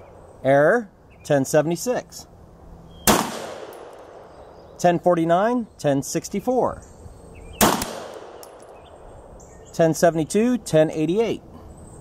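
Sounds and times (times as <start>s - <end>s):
pistol shot echoing: 3.0s - 4.6s, 7.6s - 9.3s.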